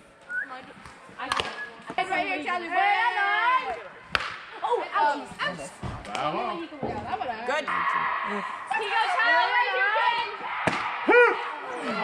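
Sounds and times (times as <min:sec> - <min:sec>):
softball striking with a smack: 0:04.1 - 0:04.4, 0:10.6 - 0:10.9.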